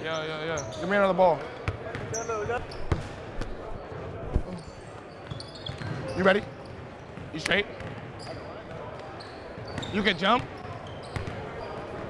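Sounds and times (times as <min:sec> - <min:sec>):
basketballs bouncing on wooden floor: 0:01.6 - 0:03.1, 0:07.2 - 0:08.8.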